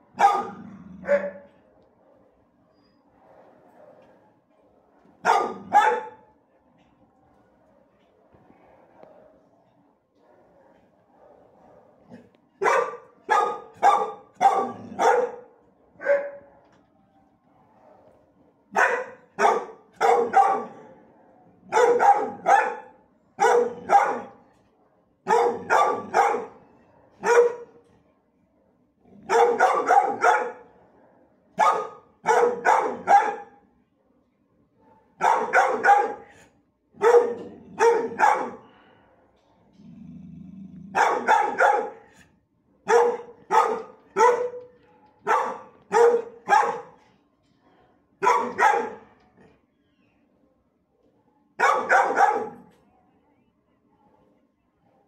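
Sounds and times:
dogs barking: 0.1s - 1.5s, 5.2s - 6.3s, 10.2s - 16.6s, 18.7s - 20.9s, 21.7s - 24.4s, 25.2s - 26.6s, 27.2s - 27.8s, 29.2s - 30.7s, 31.6s - 33.6s, 35.2s - 36.3s, 37.0s - 38.7s, 40.9s - 42.1s, 42.8s - 47.0s, 48.2s - 49.1s, 51.6s - 52.7s.

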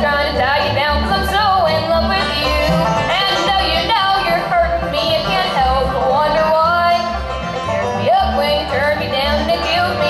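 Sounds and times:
bluegrass band playing: 0.0s - 10.0s.

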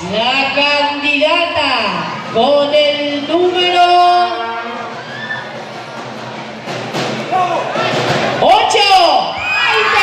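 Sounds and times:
crowd shouting and cheering: 1.8s - 10.0s
audience murmur: 4.8s - 8.4s.

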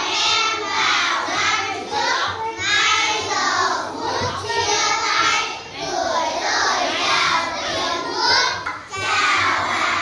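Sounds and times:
children singing: 0.0s - 10.0s.

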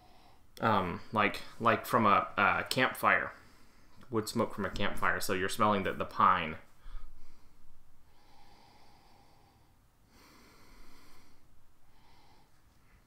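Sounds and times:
man breathing through nose: 0.0s - 0.5s, 6.8s - 13.0s.

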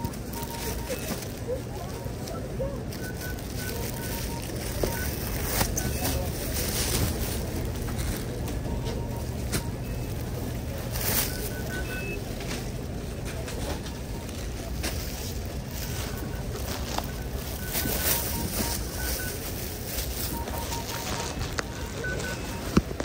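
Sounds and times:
plastic bags crinkling: 0.0s - 23.0s
store ambience hum: 0.0s - 23.0s.

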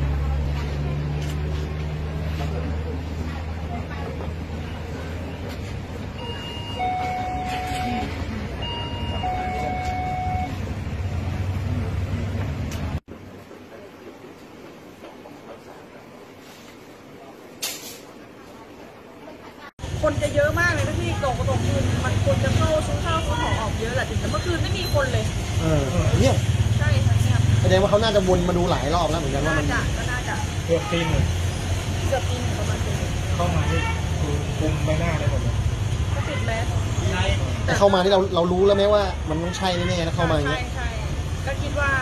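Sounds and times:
road traffic rumble: 0.0s - 42.0s
shop interior hum: 0.0s - 42.0s.

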